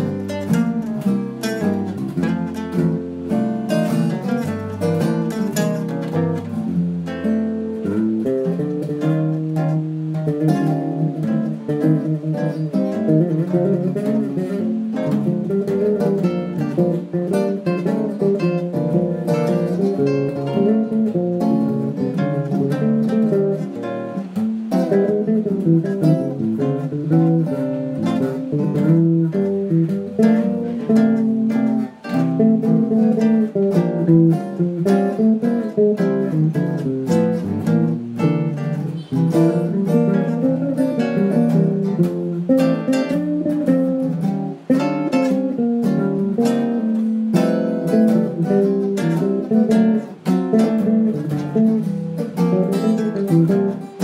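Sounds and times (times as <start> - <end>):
acoustic guitar: 0.0 - 54.0
plucked electric guitar: 0.0 - 54.0
walking bass: 0.0 - 54.0.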